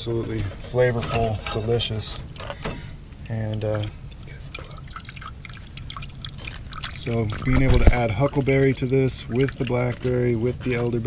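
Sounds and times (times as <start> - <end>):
low steady hum: 0.0 - 11.0
juice dripping into metal pot: 0.3 - 11.0.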